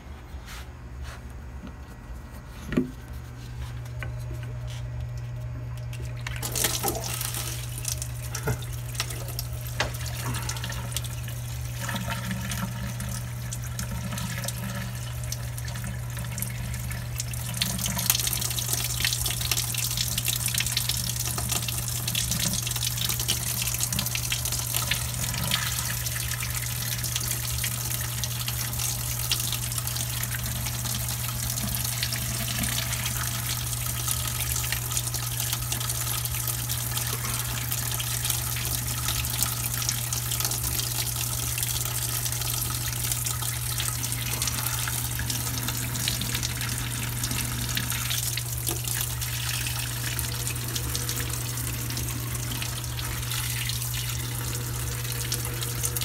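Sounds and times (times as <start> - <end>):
water pouring from hose onto drain: 6.0 - 56.0.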